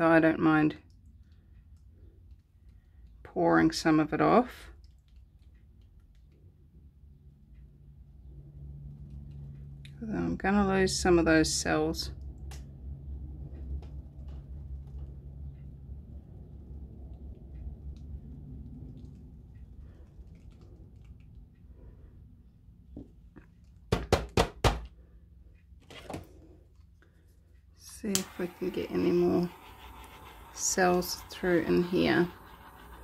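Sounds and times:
low rumble of handling: 12.1s - 23.8s.

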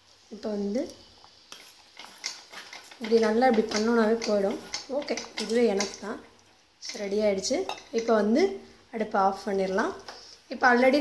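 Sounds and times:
woman talking: 0.3s - 1.0s, 3.0s - 11.0s
metal ladle scraping metal pot: 2.0s - 6.1s.

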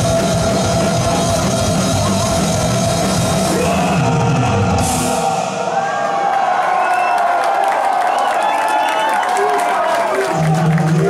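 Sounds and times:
heavy metal band playing: 0.0s - 6.3s
crowd cheering and whooping: 0.0s - 11.0s.

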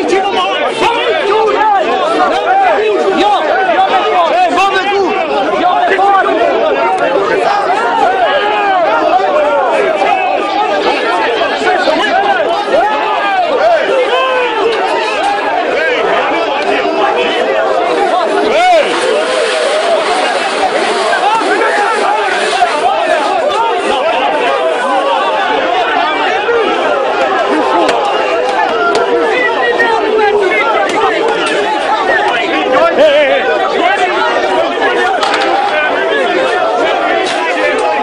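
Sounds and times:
crowd of men shouting: 0.0s - 38.0s.

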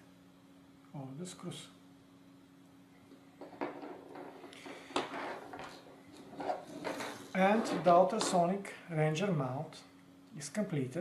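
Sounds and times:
objects clicking and knocking on table: 3.4s - 8.4s.

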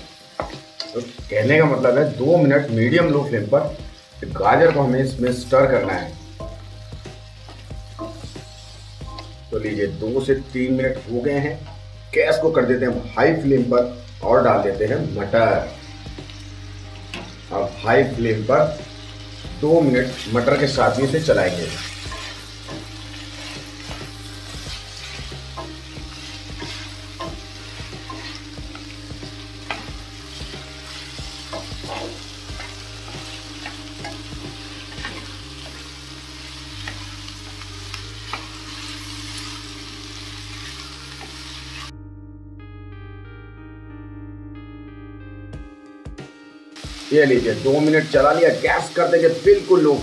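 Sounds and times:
vegetables sizzling in a pan: 0.0s - 41.9s, 46.8s - 50.0s
background music: 0.0s - 50.0s
spatula scraping a pan: 20.1s - 28.8s, 29.6s - 35.9s.

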